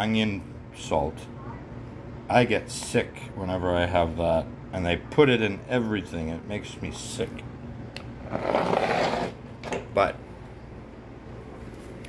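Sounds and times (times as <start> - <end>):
shaker rubbing on wooden table: 8.2 - 9.4.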